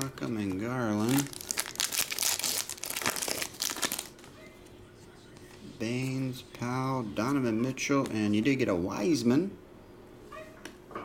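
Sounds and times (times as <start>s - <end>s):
plastic wrapper tearing and crinkling: 0.0s - 4.3s.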